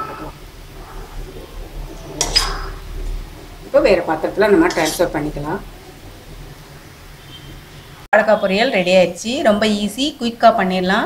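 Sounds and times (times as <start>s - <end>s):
spatula scraping pan: 0.0s - 6.5s.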